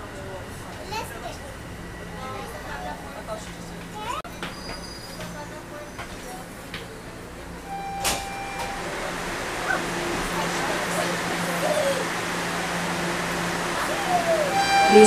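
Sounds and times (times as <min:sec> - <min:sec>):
faint passenger voices: 0:00.0 - 0:15.0
subway car low hum: 0:00.0 - 0:15.0.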